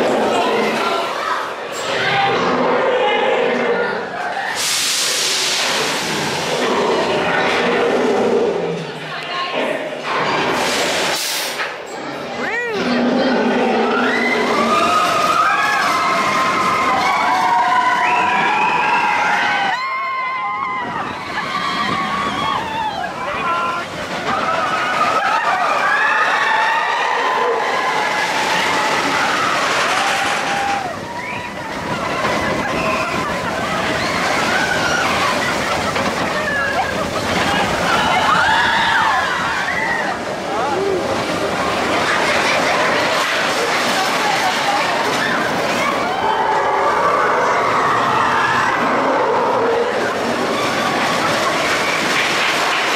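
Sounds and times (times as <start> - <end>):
roller coaster train running: 0.0 - 52.9
riders screaming and yelling: 13.8 - 52.9.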